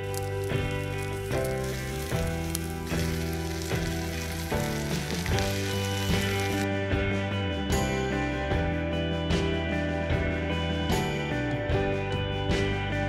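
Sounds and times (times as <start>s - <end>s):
sausages sizzling in a pan: 0.0s - 6.7s
background music melody: 0.0s - 13.0s.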